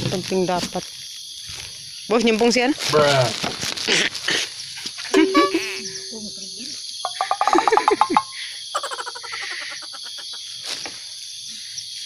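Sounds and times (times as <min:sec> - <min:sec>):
high insect drone: 0:00.0 - 0:12.0.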